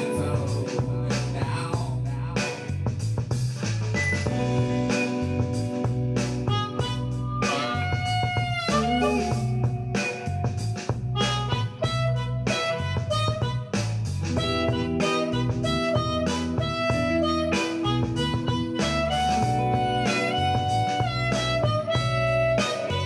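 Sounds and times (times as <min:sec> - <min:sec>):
blues backing track: 0:00.0 - 0:23.0
blues harmonica wailing: 0:04.3 - 0:23.0.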